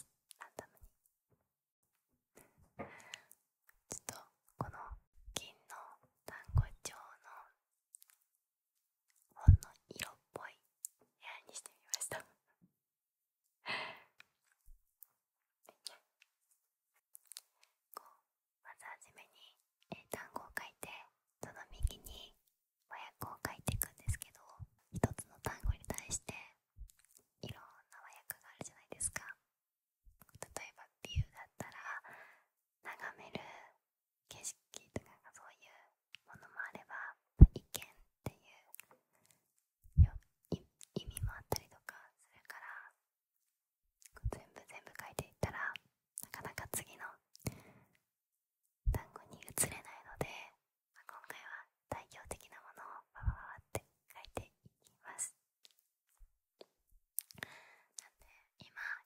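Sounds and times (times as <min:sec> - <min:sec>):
woman whispering: 0:00.0 - 0:00.9, 0:03.0 - 0:07.6, 0:09.3 - 0:12.6, 0:15.6 - 0:16.1, 0:17.3 - 0:26.7, 0:27.4 - 0:29.4, 0:30.3 - 0:39.0, 0:40.0 - 0:43.0, 0:44.0 - 0:47.6, 0:48.9 - 0:55.4, 0:56.6 - 0:59.0.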